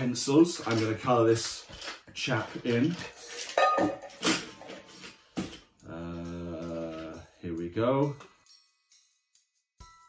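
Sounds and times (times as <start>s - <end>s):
pencils clattering onto table: 0.0s - 5.7s.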